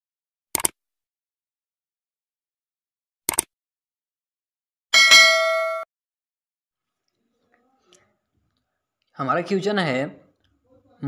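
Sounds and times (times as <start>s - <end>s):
notification bell chime: 5.0s - 5.9s.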